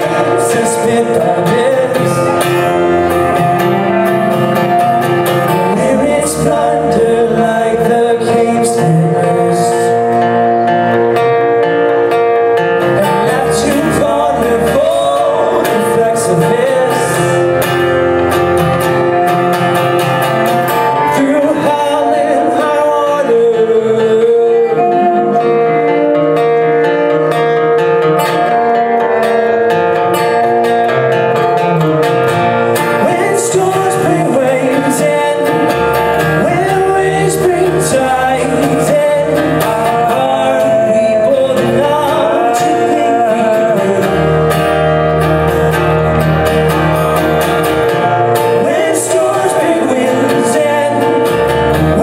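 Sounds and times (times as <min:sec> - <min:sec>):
man singing: 0:00.0 - 0:11.2, 0:12.8 - 0:27.2, 0:32.6 - 0:46.2, 0:46.8 - 0:52.0
strummed acoustic guitar: 0:00.0 - 0:52.0.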